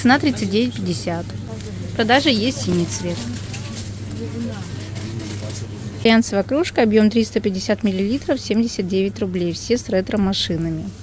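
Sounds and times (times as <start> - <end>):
faint background voices: 0.0 - 6.4
steady low hum: 0.0 - 11.0.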